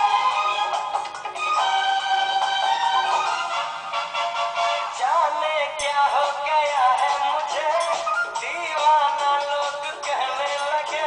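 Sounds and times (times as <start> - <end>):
film song with high singing voice: 0.0 - 11.0.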